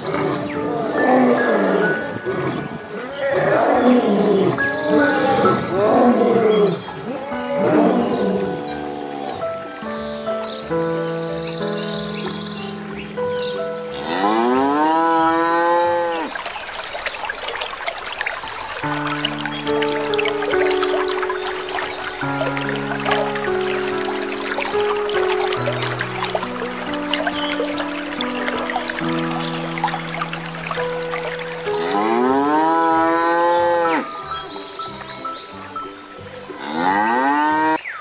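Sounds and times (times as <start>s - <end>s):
lion growling and roaring: 0.0s - 9.6s
background music: 0.0s - 16.3s, 18.8s - 37.8s
cow mooing: 0.2s - 9.4s, 14.0s - 16.3s, 31.7s - 34.1s, 36.6s - 37.8s.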